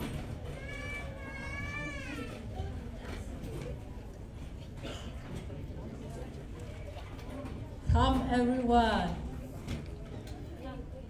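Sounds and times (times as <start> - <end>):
low crowd rumble: 0.0 - 11.0.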